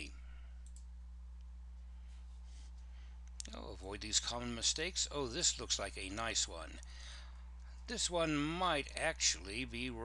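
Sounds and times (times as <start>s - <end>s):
low electrical hum: 0.0s - 10.0s
computer mouse clicks: 0.6s - 0.9s.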